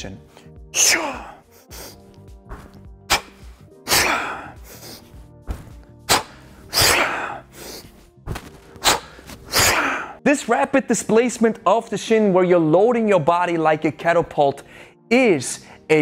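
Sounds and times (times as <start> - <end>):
quiet background music: 0.0 - 16.0.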